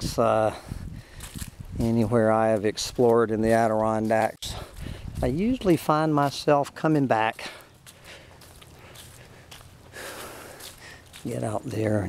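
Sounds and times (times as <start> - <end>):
footsteps on leaf-covered dirt: 0.5 - 12.0.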